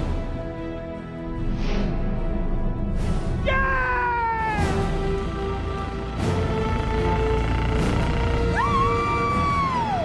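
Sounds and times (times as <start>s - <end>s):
background music: 0.0s - 10.0s
man yelling: 3.4s - 4.8s.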